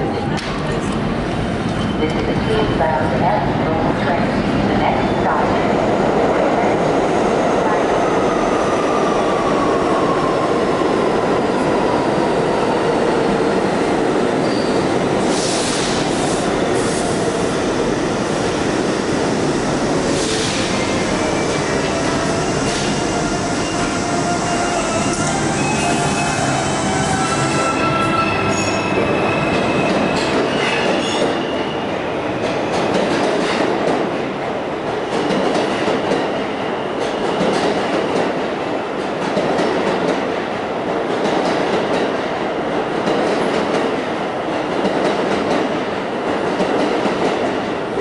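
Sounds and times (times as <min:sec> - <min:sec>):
subway train rumble: 0:00.0 - 0:48.0.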